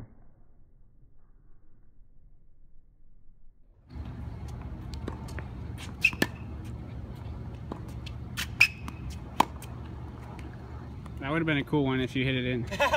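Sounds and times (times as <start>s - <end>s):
low hum: 0.0s - 11.7s
tennis ball struck by racquets: 3.9s - 11.2s.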